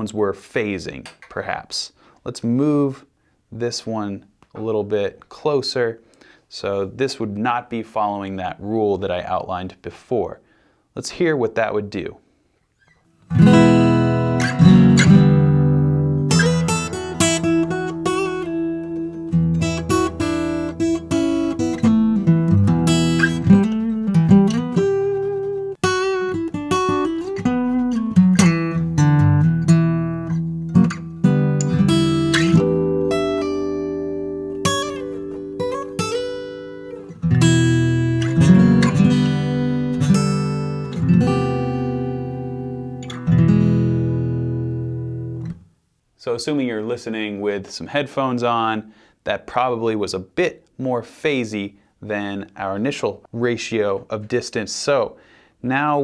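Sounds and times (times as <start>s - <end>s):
acoustic guitar notes and chords: 12.8s - 45.9s.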